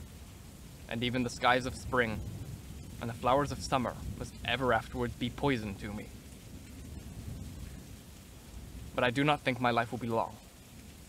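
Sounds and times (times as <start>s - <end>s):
background hiss: 0.0s - 11.0s
low rumble: 0.9s - 9.5s.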